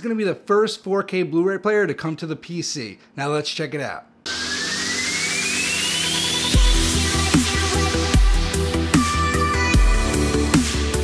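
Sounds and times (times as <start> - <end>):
noise riser with rising tone: 4.3 - 7.6.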